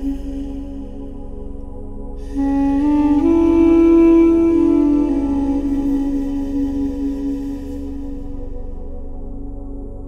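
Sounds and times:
duduk slow melody: 0:00.0 - 0:09.3
low drone: 0:00.0 - 0:10.0.

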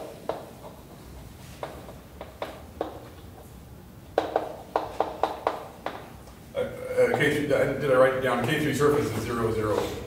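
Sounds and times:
chalk tapping on blackboard: 0:00.0 - 0:03.5, 0:04.1 - 0:06.3.

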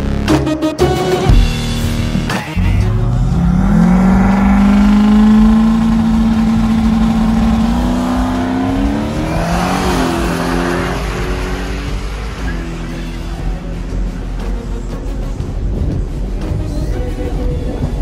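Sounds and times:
drag car engine revving: 0:02.6 - 0:15.6.

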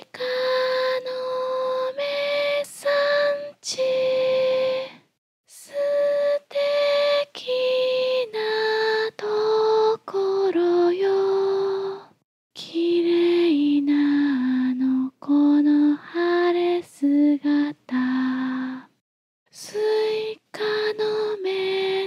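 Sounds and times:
woman singing a lullaby: 0:00.0 - 0:18.9, 0:19.5 - 0:22.0.

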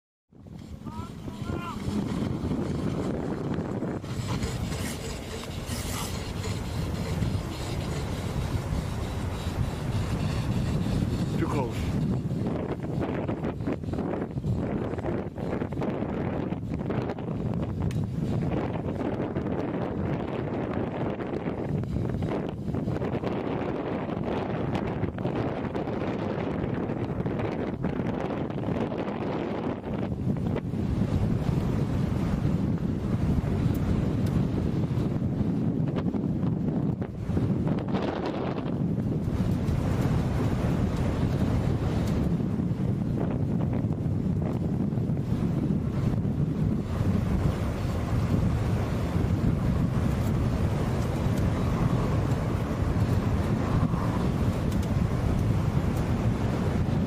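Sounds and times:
wind buffeting microphone: 0:00.3 - 0:57.0.

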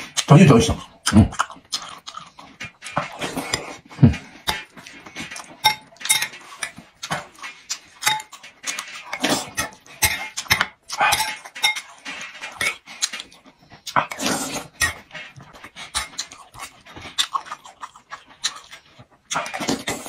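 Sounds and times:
slurping and chewing: 0:00.0 - 0:20.0
metal spoon clinking on bowl: 0:05.6 - 0:06.8, 0:08.0 - 0:08.4, 0:09.6 - 0:12.0.

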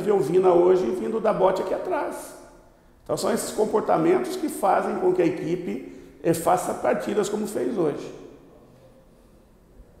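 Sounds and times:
faint steady hum: 0:00.0 - 0:10.0
man's voice: 0:03.1 - 0:08.2.

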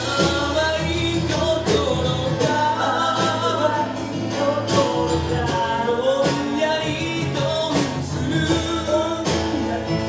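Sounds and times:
drum hits: 0:00.0 - 0:09.6
acoustic guitar: 0:00.0 - 0:10.0
male vocals in harmony: 0:00.0 - 0:10.0.

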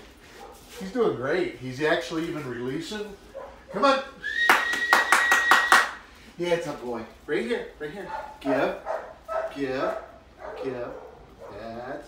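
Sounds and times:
held whistled note: 0:04.2 - 0:05.9
quick hand claps: 0:04.4 - 0:06.0.

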